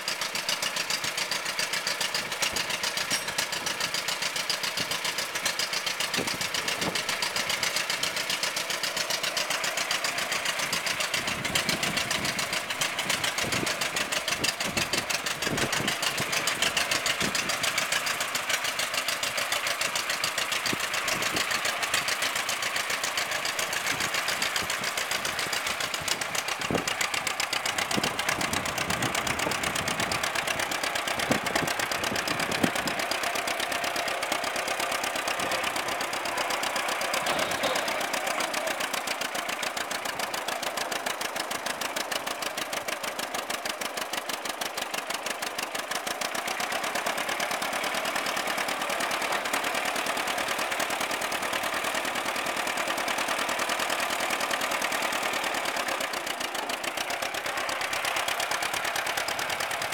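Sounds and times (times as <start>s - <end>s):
tractor engine popping exhaust: 0.0s - 59.9s.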